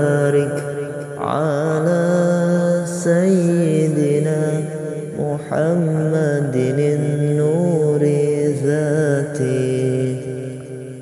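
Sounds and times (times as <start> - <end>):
devotional chant singing: 0.0 - 11.0.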